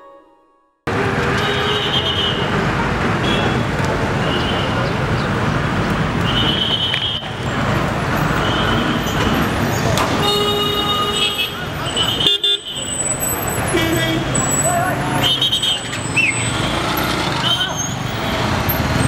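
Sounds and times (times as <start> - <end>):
traffic: 0.9 - 19.0
people's voices: 11.2 - 16.2.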